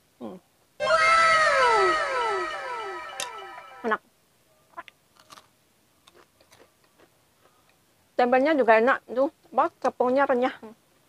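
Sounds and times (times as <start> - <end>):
echoing meow-like tones: 0.8 - 3.8
crunchy chewing: 5.1 - 7.8.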